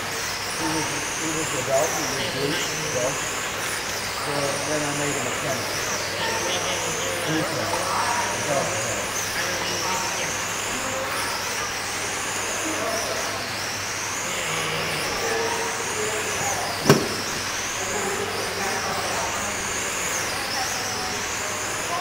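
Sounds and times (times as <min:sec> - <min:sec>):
rc car motors whining: 0:00.0 - 0:22.0
sharp knock: 0:16.8 - 0:17.3.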